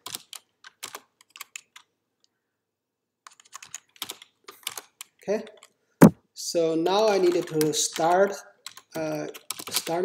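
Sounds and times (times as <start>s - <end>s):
typing on keyboard: 0.0s - 1.9s, 3.2s - 5.8s, 6.9s - 10.0s.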